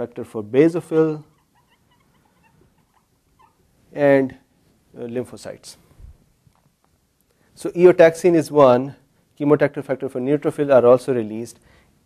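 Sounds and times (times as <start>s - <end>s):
marker squeaking on whiteboard: 1.0s - 3.7s.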